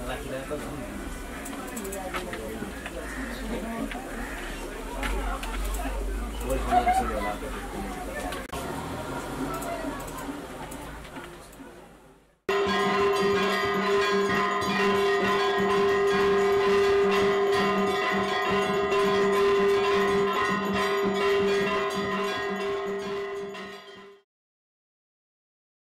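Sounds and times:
brass temple bells ringing: 0:12.5 - 0:24.2.

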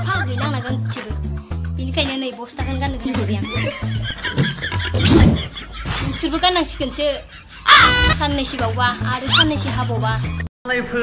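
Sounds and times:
woman talking animatedly: 0:01.8 - 0:03.6, 0:06.1 - 0:10.4
loud harsh cry: 0:07.6 - 0:08.4, 0:09.1 - 0:09.7.

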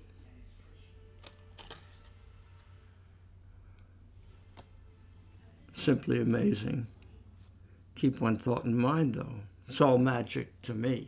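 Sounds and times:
steady low hum: 0:00.0 - 0:11.0
playing card clicks: 0:01.2 - 0:02.7.

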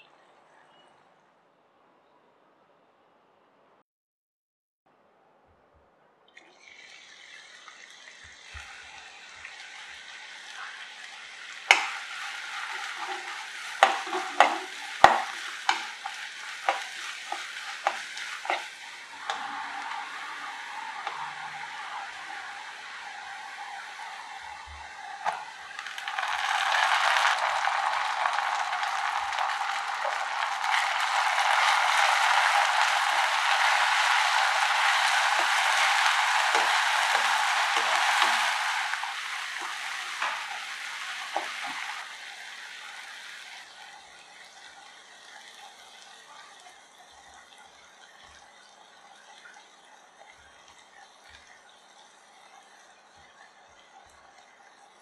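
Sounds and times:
food sizzling in hot oil: 0:06.4 - 0:53.3
wooden spatula knocking on pan: 0:11.7 - 0:19.4.

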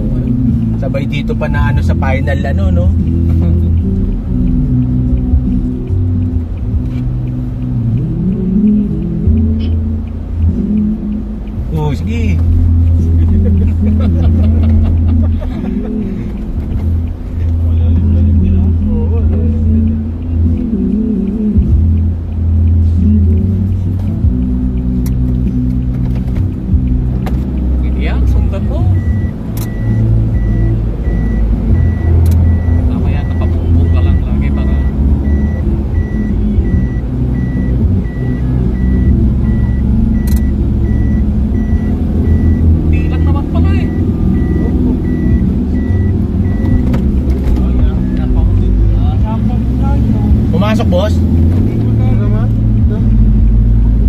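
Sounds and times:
bass-heavy music in vehicle: 0:00.0 - 0:54.0
vehicle engine and road noise: 0:00.0 - 0:54.0
sharp clicks: 0:18.4 - 0:42.7
high electronic beep: 0:28.2 - 0:47.8.

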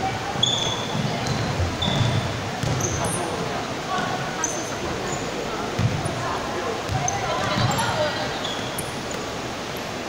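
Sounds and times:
sneaker squeaks: 0:00.3 - 0:03.3, 0:04.4 - 0:06.3, 0:06.9 - 0:09.3
basketball bouncing on gym floor: 0:00.4 - 0:03.1, 0:05.8 - 0:06.1, 0:06.9 - 0:07.8.

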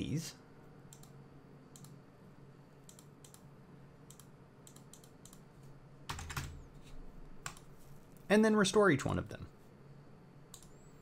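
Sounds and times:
mouse clicks: 0:02.8 - 0:03.4, 0:04.1 - 0:05.4, 0:10.5 - 0:10.8
keyboard keystrokes: 0:06.1 - 0:06.6.

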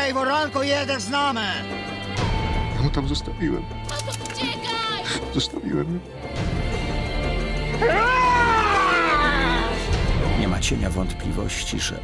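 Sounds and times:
girl screaming: 0:07.8 - 0:09.7.

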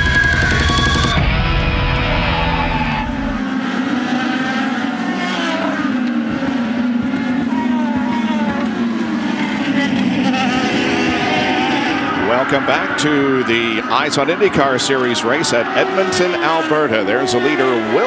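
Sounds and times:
race car engines passing: 0:00.0 - 0:18.0.

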